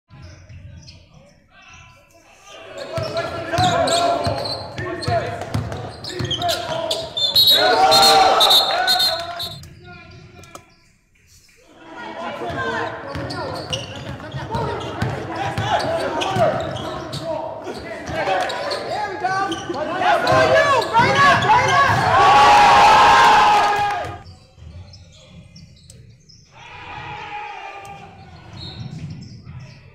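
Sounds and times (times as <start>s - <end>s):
players' voices echoing: 0.1s - 29.9s
basketball bouncing on hardwood: 4.8s - 6.3s.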